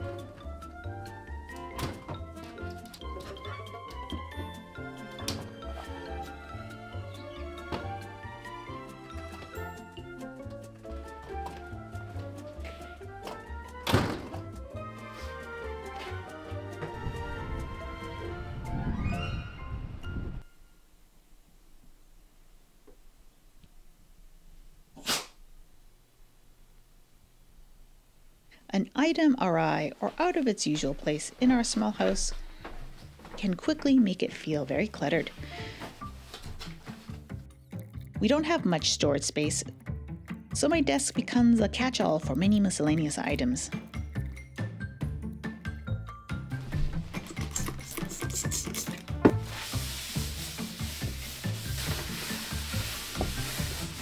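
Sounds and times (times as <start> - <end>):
background music: 0.0 - 21.0, 29.1 - 54.0
dog sneezing: 25.0 - 25.4, 47.6 - 49.0
paper towel wiping wet wood: 49.4 - 54.0.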